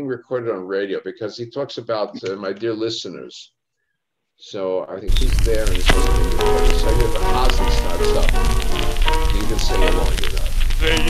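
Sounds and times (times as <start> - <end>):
old recorded music: 5.0 - 11.0
record crackle: 5.0 - 11.0.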